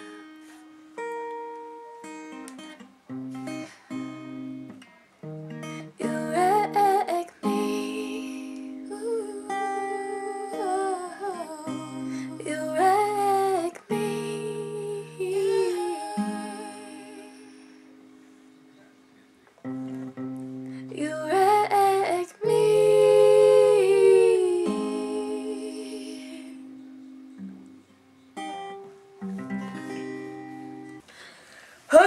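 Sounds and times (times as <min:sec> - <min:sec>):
acoustic guitar chords: 0:00.0 - 0:31.2
woman singing: 0:05.8 - 0:17.8, 0:20.8 - 0:26.8
long held vocal note: 0:22.4 - 0:26.7.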